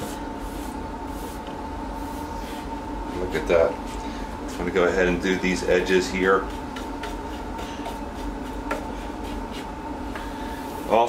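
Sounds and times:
paintbrush bristles rubbing wood: 0.0 - 2.7, 5.5 - 9.8
steady hum: 0.0 - 11.0.

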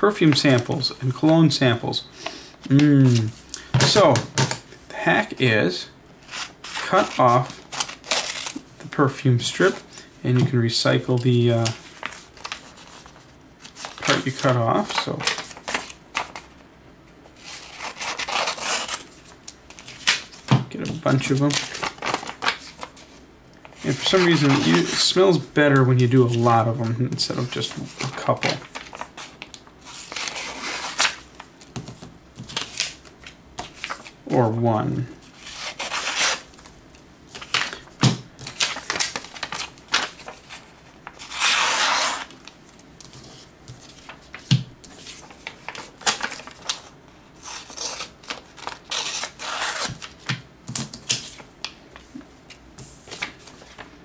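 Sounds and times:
paper rustling: 6.2 - 16.6, 17.4 - 34.2, 35.2 - 54.0.

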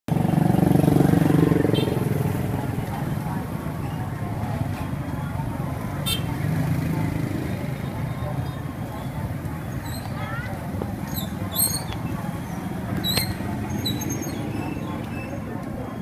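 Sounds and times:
motorcycle engine running: 0.1 - 14.6.

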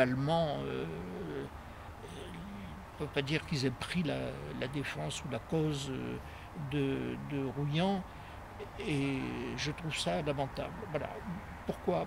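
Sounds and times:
man's drawn-out hesitation sound: 0.0 - 12.0
faint hummed mmm: 0.4 - 3.3.

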